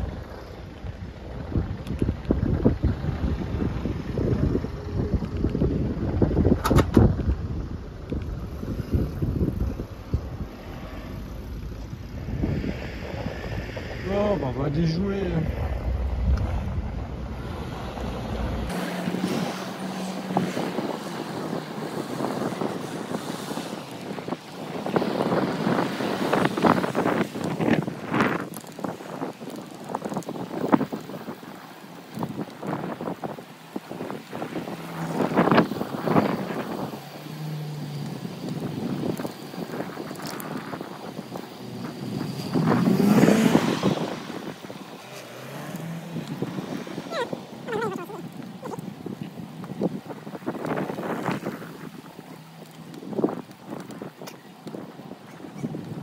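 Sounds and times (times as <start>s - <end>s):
road noise: 0.0s - 56.0s
wind rushing over microphone: 0.0s - 56.0s.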